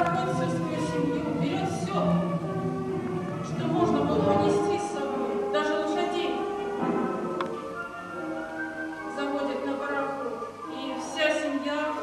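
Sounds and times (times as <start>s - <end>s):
choir singing sustained notes: 0.0s - 8.8s.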